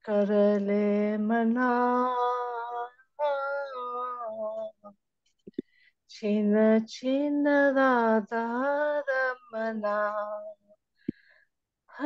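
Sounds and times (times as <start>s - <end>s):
woman singing devotional song: 0.0s - 4.9s, 6.1s - 10.8s.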